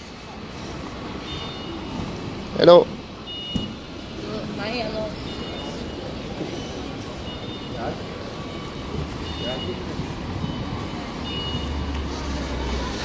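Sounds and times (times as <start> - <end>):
faint voices of passers-by: 0.0 - 13.0
traffic noise: 0.0 - 13.0.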